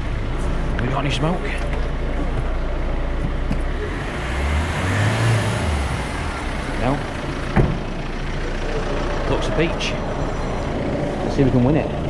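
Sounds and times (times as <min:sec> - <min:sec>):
car engine running at low revs: 0:00.0 - 0:12.0.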